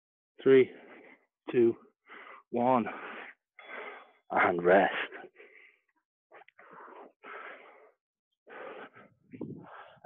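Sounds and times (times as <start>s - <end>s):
man breathing hard: 0.7s - 1.3s, 2.0s - 4.3s, 5.0s - 10.0s.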